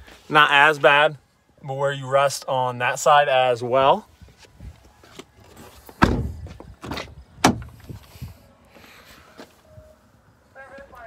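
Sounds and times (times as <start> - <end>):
car door clunks and clicks: 5.2 - 8.0
car door thump: 6.0 - 7.9.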